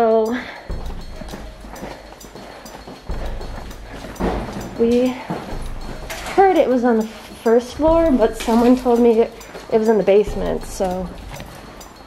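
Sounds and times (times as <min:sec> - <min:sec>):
footsteps on hard floor: 0:00.7 - 0:11.8.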